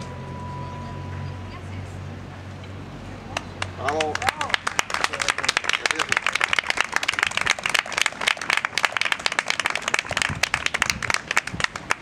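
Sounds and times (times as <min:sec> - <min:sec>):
crowd applauding: 0:03.4 - 0:12.0.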